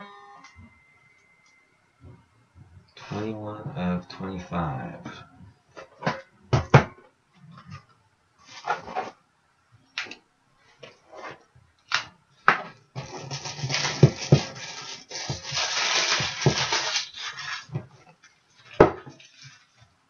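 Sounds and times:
plastic wrapper crinkling: 13.0 - 17.7.

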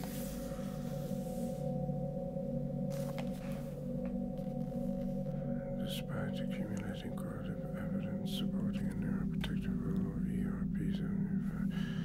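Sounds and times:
low music drone: 0.0 - 12.0
person whispering: 5.8 - 12.0.

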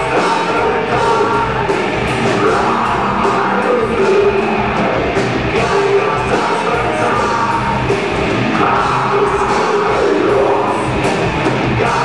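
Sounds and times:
heavy metal band playing: 0.0 - 12.0.

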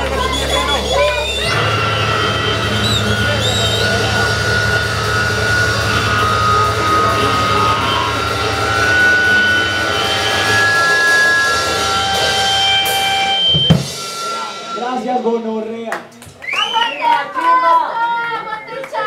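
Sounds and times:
low drone: 0.0 - 15.4
high synthesizer tones: 0.0 - 15.6
distorted bass: 0.0 - 15.9
drums: 0.0 - 17.1.

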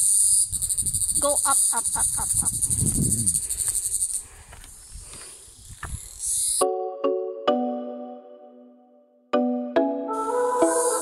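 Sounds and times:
high-pitched insect chorus: 0.0 - 6.6.

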